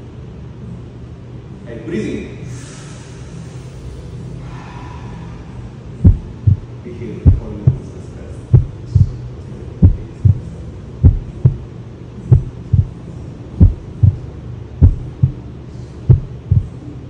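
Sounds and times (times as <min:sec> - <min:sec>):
steady low hum: 0:00.0 - 0:17.0
heartbeat thumps: 0:06.0 - 0:07.9, 0:08.5 - 0:09.2, 0:09.8 - 0:11.7, 0:12.3 - 0:13.0, 0:13.6 - 0:15.4, 0:16.1 - 0:16.8.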